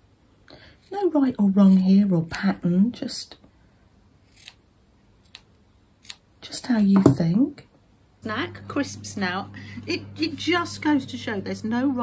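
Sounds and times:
scissors snipping fabric: 0.8s - 2.6s, 4.3s - 4.6s.

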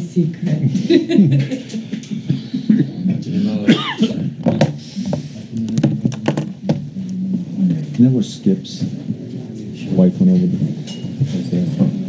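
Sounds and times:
people talking and laughing: 0.0s - 12.0s
handling clicks and knocks: 5.6s - 6.8s.

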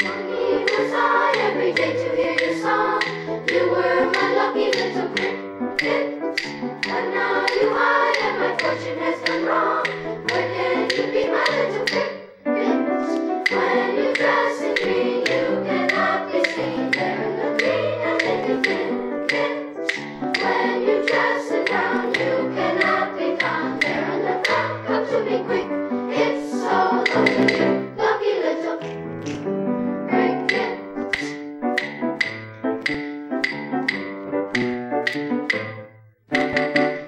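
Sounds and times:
sharp beat taps: 0.0s - 12.2s, 13.4s - 25.2s, 27.0s - 27.9s, 28.8s - 29.6s, 30.4s - 37.0s
sharp ticks: 0.0s - 12.3s, 13.1s - 25.6s, 26.2s - 28.0s, 30.3s - 37.0s
chorus singing with accompaniment: 0.0s - 29.4s, 30.1s - 31.4s.

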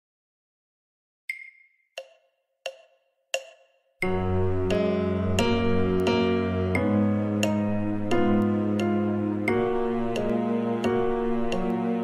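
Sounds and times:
metronome count-in clicks: 1.3s - 4.2s, 10.1s - 10.4s.

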